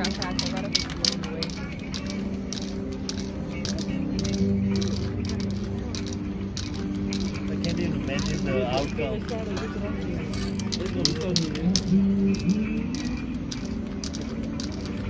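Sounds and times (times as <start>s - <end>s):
background music: 0.0s - 15.0s
spray can hissing: 0.0s - 15.0s
voices: 0.0s - 15.0s.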